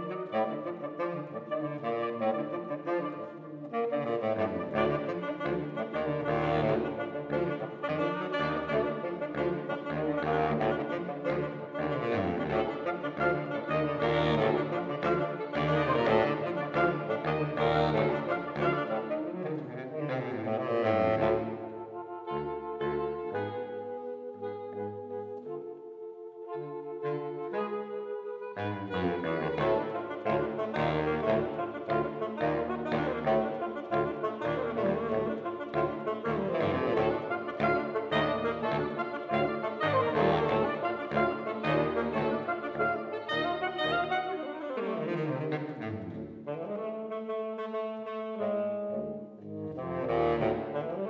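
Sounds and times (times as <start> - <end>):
saxophone quartet playing chords: 0.0 - 51.0.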